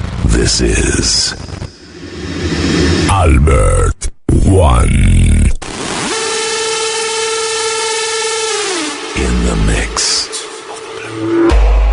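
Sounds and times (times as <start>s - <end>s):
deep gliding synth sweep: 1.4s - 3.2s, 5.8s - 11.9s.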